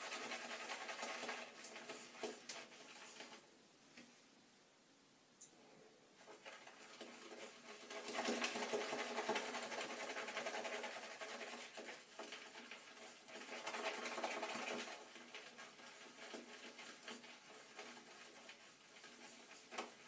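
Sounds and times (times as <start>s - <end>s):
shaving brush swishing in bowl: 6.4s - 20.0s.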